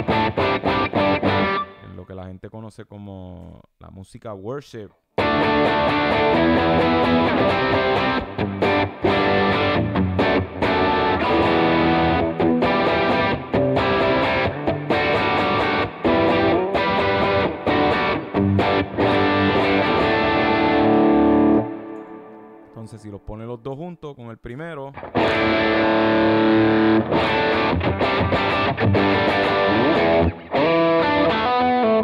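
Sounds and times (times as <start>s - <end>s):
distorted electric guitar chords: 0.0s - 2.0s, 5.2s - 22.8s, 25.0s - 32.0s.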